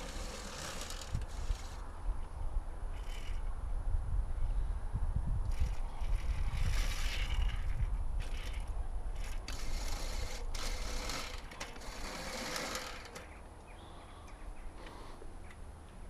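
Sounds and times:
push lawnmower whirring: 0:00.0 - 0:01.8, 0:05.5 - 0:13.3
wind rumbling on microphone: 0:00.0 - 0:12.2.

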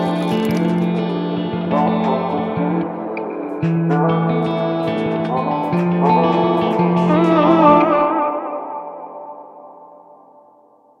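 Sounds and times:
electric guitar with echo: 0:00.0 - 0:11.0.

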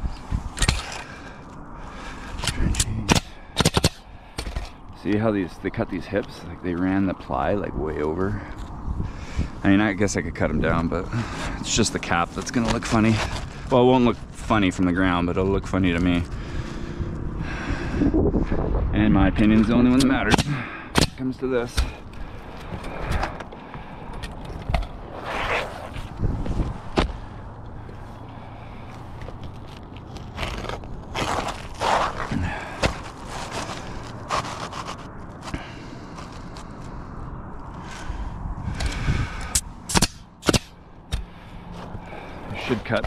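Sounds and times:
nail gun shots: 0:03.1 - 0:04.0, 0:39.9 - 0:40.7
shingles scraping on roof: 0:25.1 - 0:26.1, 0:30.3 - 0:35.6.

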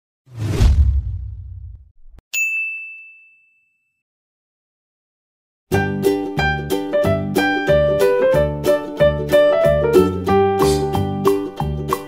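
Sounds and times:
low rumble of intro sting: 0:00.4 - 0:01.9
bright ding: 0:02.3 - 0:04.0.

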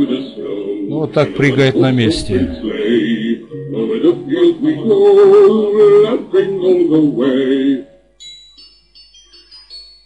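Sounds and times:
man singing with music: 0:00.0 - 0:08.1.

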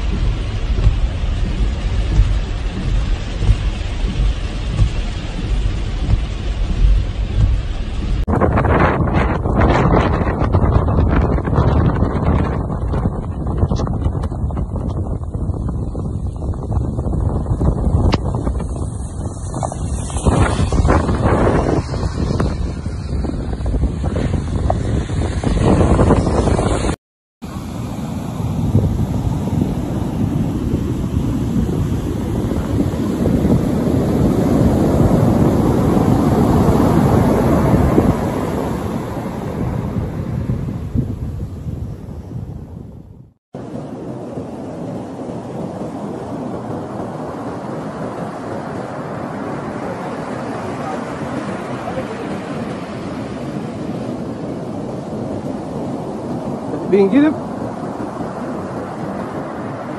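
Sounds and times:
breaking surf: 0:00.0 - 0:59.9
storm wind buffeting microphone: 0:00.0 - 0:59.9.

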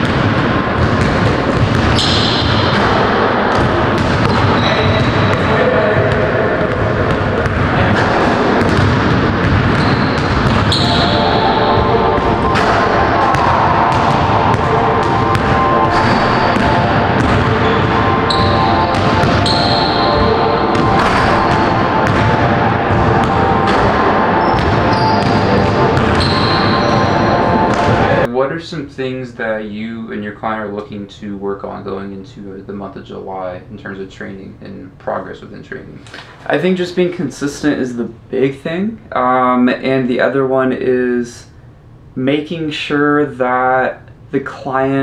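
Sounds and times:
basketballs bouncing on wood floor: 0:00.0 - 0:27.1
background music: 0:00.0 - 0:28.3
basketball bouncing on hardwood: 0:16.6 - 0:17.5.

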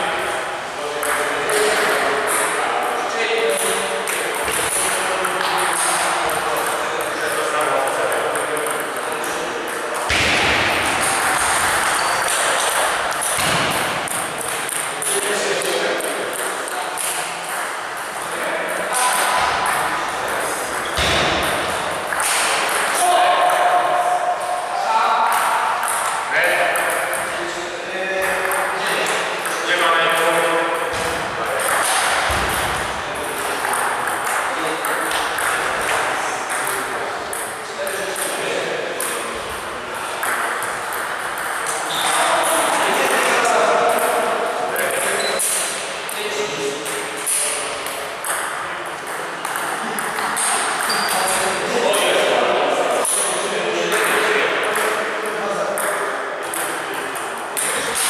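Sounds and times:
table tennis balls clicking: 0:01.0 - 0:23.7, 0:25.3 - 0:27.4, 0:28.2 - 0:52.1, 0:53.0 - 0:58.0.

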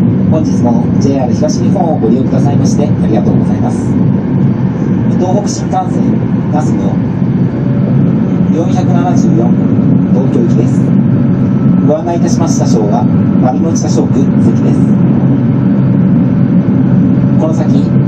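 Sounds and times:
train low rumble inside carriage: 0:00.0 - 0:18.0
public address announcement: 0:00.3 - 0:04.1, 0:04.8 - 0:07.2, 0:08.4 - 0:11.0, 0:11.7 - 0:15.1, 0:17.0 - 0:18.0.

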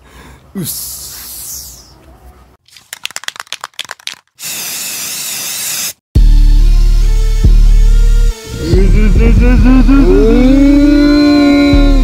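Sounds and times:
bass-heavy music hit: 0:06.2 - 0:12.0.

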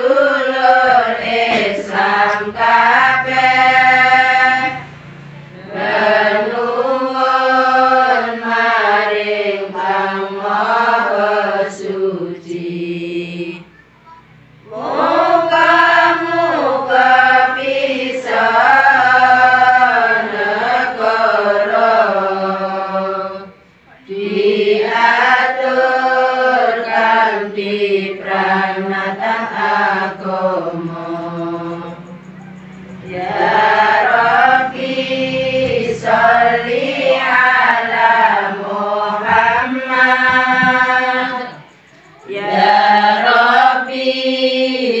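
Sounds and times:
women chanting in unison: 0:00.0 - 0:13.7, 0:14.4 - 0:45.0.

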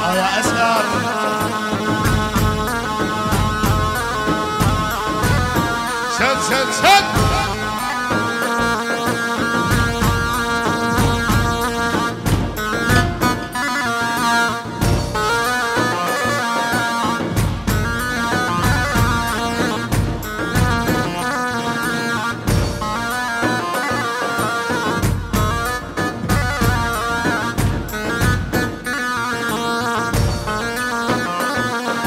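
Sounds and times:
bass drum beating: 0:02.0 - 0:08.8, 0:09.6 - 0:13.6, 0:14.8 - 0:15.7, 0:17.3 - 0:21.2, 0:22.5 - 0:23.2, 0:25.0 - 0:28.8, 0:30.2 - 0:31.0.

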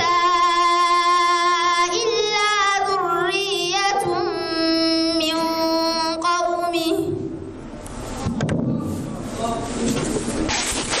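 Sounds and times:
people talking: 0:08.2 - 0:10.3
rustling noise: 0:08.8 - 0:11.0.

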